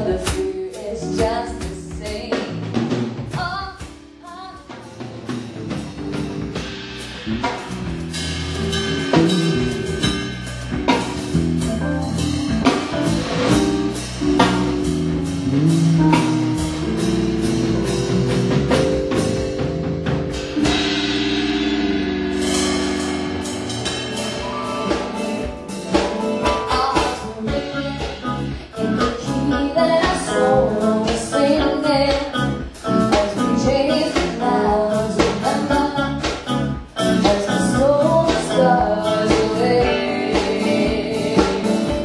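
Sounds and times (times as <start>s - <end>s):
bass guitar: 0.0s - 42.0s
drum kit beating: 0.0s - 42.0s
keyboard: 0.0s - 42.0s
person singing: 24.2s - 42.0s.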